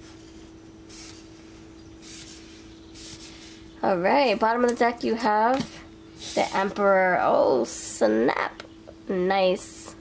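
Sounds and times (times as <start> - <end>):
steady low hum: 0.0 - 10.0
cards swishing across tabletop: 0.9 - 3.6.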